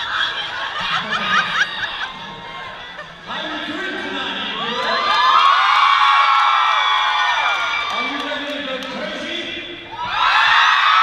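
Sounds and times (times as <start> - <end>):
crowd screaming and cheering: 0.0 - 11.0.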